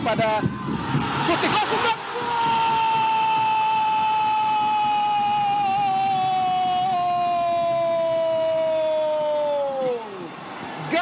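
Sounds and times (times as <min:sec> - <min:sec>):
long drawn-out goal call: 0:01.0 - 0:10.4
commentator shouting: 0:01.2 - 0:10.3.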